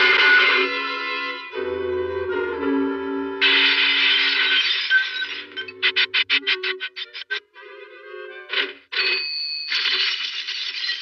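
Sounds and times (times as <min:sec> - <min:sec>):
orchestral cartoon music: 0:00.4 - 0:04.2.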